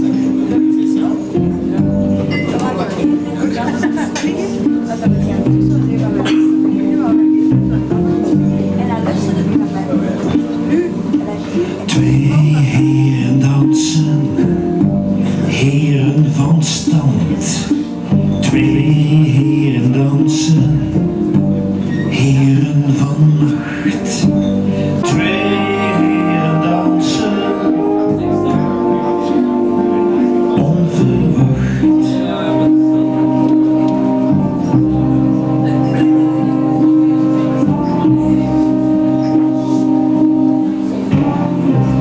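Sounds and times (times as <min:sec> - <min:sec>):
cello: 0:00.0 - 0:42.0
chamber pop band playing: 0:00.0 - 0:42.0
harp: 0:00.0 - 0:42.0
man singing: 0:10.7 - 0:42.0
trumpet long notes: 0:25.0 - 0:42.0.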